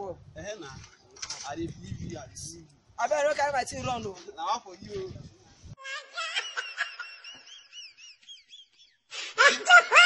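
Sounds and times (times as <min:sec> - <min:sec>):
high whistled chirps: 0:07.6 - 0:09.1.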